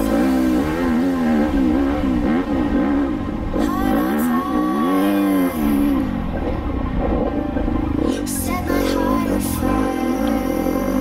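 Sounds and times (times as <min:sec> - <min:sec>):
background music: 0:00.0 - 0:11.0
motorcycle engine revving: 0:00.0 - 0:11.0.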